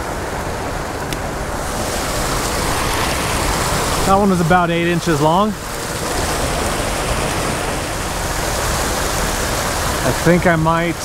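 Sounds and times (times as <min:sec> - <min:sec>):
water pouring over weir: 0:01.6 - 0:11.0.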